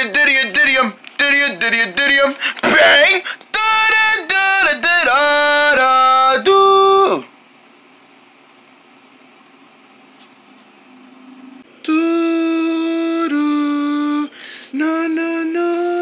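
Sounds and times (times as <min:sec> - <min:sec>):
person singing wordless notes: 0:00.0 - 0:07.3, 0:11.8 - 0:16.0.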